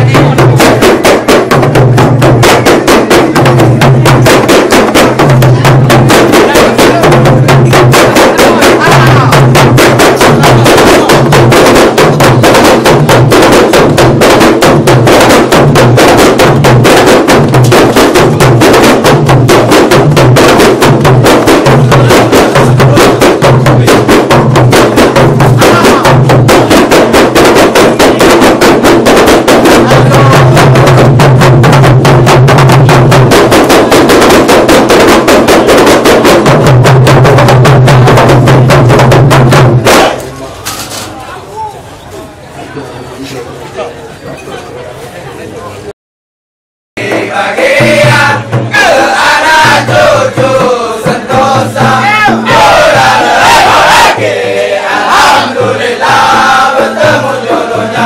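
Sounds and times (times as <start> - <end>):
frame drums struck by hand: 0.0 - 40.4, 47.0 - 58.0.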